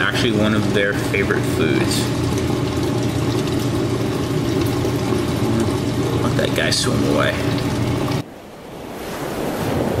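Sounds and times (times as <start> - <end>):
rushing surf-like water: 8.2 - 10.0.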